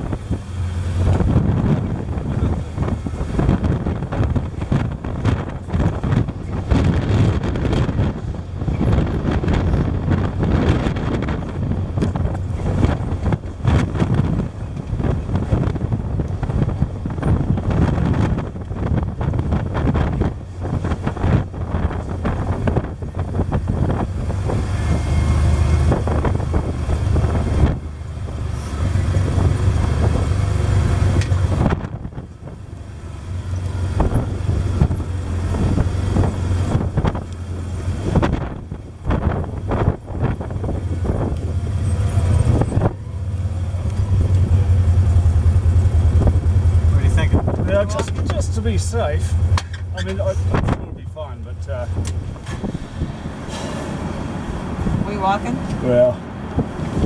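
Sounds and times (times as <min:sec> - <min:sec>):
vehicle engine running: 0:00.0 - 0:57.0.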